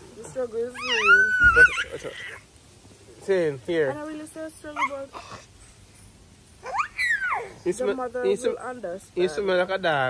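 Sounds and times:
baby squealing cry: 0.8s - 2.4s, 6.6s - 7.6s.

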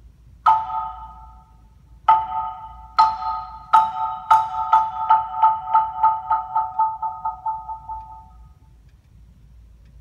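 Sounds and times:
marimba struck with mallets: 0.4s - 8.6s.

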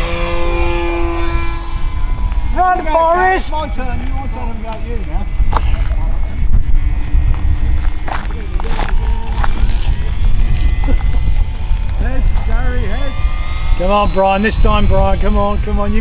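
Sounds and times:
model plane motor whine: 0.0s - 16.0s
wind buffeting microphone: 0.0s - 16.0s
faint voices: 2.5s - 16.0s.

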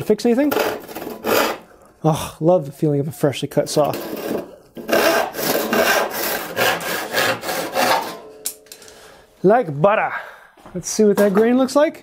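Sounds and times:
handsaw cutting wood: 0.4s - 1.7s, 3.9s - 8.3s.

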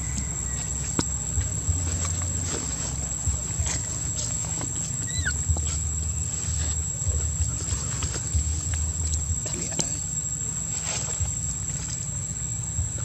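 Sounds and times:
insect drone: 0.0s - 13.0s.

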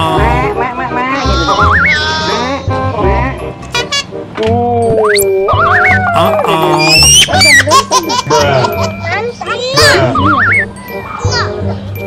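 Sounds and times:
background music: 0.0s - 12.0s
toddler squealing: 1.2s - 2.5s, 5.8s - 7.7s
toddler babbling: 1.2s - 2.6s.

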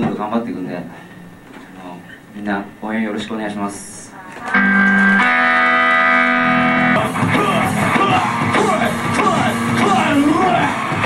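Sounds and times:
electric guitar chord ringing: 4.5s - 10.6s
rock band playing: 4.5s - 11.0s.

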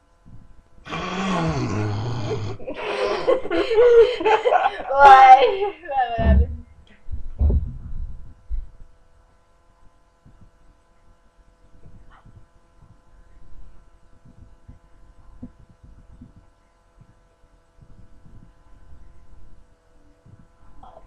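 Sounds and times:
faint electrical hum: 0.0s - 21.0s.

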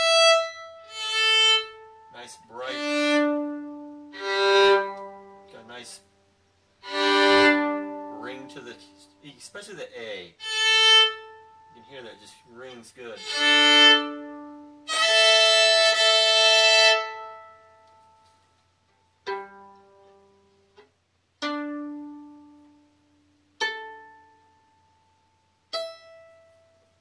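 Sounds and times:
violin bowed double stops: 0.0s - 6.0s, 6.8s - 9.2s, 10.4s - 18.3s
violin strings plucked: 0.0s - 6.0s, 6.8s - 9.5s, 10.1s - 18.4s, 19.2s - 24.9s, 25.6s - 27.0s.

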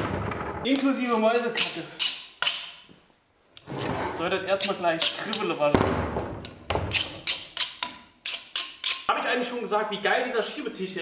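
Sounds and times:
metal scraper on wooden beam: 6.8s - 9.1s.

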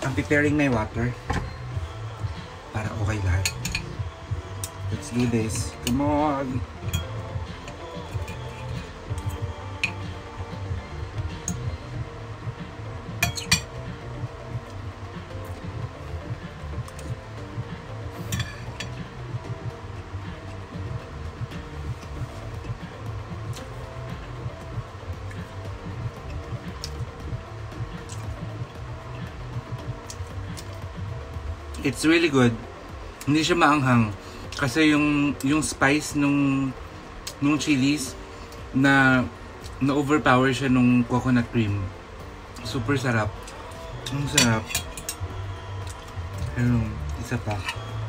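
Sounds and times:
background music: 0.0s - 48.0s
cutlery clinking on plate: 13.2s - 13.7s.

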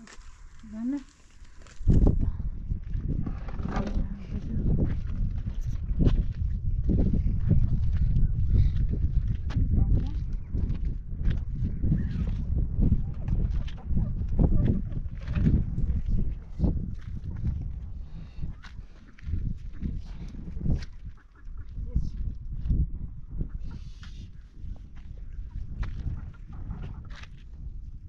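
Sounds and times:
low uneven rumble: 0.0s - 5.9s.

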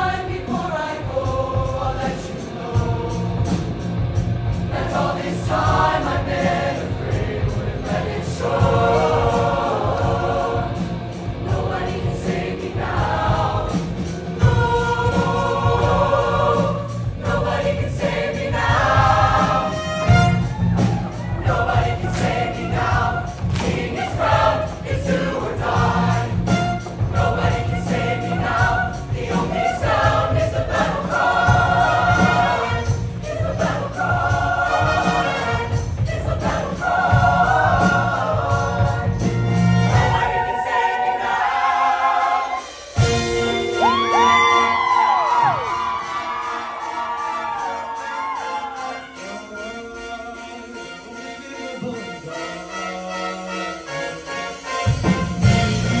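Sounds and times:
choir singing in harmony: 0.0s - 56.0s
instrumental accompaniment with beat: 0.0s - 56.0s.

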